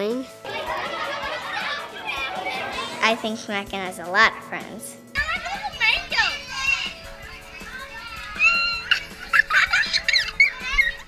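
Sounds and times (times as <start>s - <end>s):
soft background music: 0.0s - 11.0s
children laughing and squealing: 0.4s - 3.0s, 5.3s - 11.0s
boy laughing: 8.4s - 10.6s.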